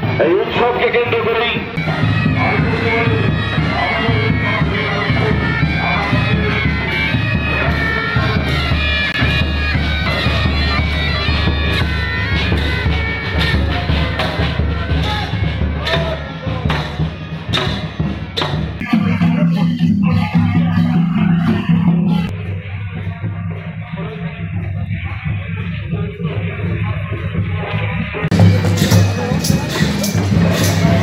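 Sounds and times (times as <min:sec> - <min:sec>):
marching drums beating: 0:01.1 - 0:22.5, 0:28.2 - 0:31.0
bagpipes playing a tune: 0:01.8 - 0:15.6.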